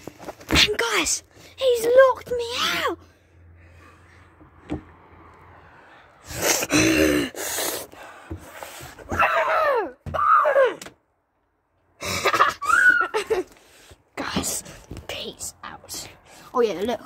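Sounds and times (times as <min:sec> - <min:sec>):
boy shouting and moaning: 0:00.5 - 0:03.1, 0:06.3 - 0:07.9, 0:09.0 - 0:11.0, 0:12.0 - 0:13.6
knocks and handling on window: 0:04.4 - 0:04.9.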